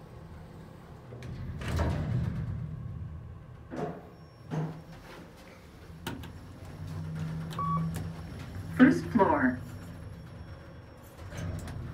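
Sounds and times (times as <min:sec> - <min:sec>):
elevator car hum: 0:00.0 - 0:11.9
electronic beep: 0:07.6 - 0:08.0.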